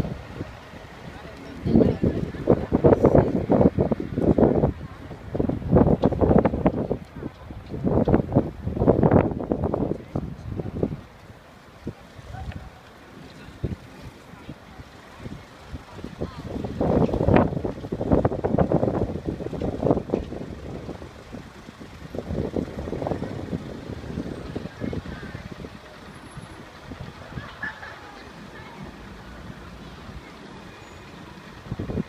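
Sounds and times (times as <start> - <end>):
cars passing: 0.0 - 32.0
passers-by talking: 0.0 - 32.0.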